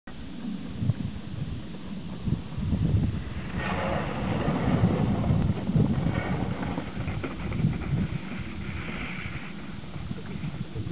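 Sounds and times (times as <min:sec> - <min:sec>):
wind buffeting microphone: 0:00.2 - 0:10.9
iceboat runners hissing on ice: 0:06.0 - 0:10.9.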